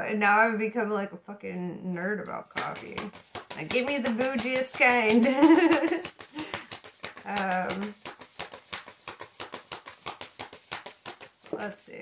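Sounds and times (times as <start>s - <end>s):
cards being shuffled: 2.2s - 12.0s.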